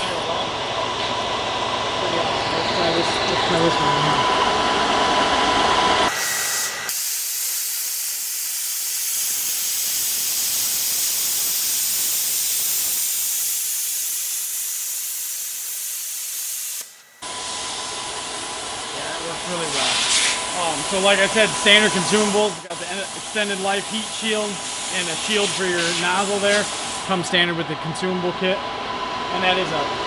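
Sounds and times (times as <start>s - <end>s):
plasma cutter hissing: 6.1s - 17.9s, 19.5s - 27.1s.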